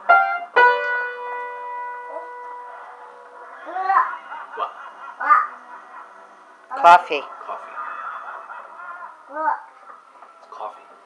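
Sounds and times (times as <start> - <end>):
piano notes ringing: 0.0 - 3.9.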